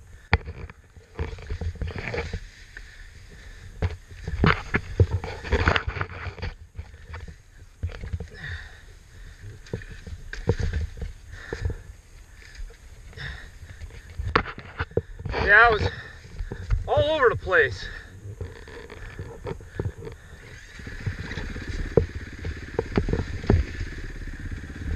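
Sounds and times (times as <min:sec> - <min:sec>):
dirt bike knocking over rocks: 0:03.8 - 0:08.8, 0:09.4 - 0:11.9, 0:12.6 - 0:17.2, 0:18.3 - 0:24.9.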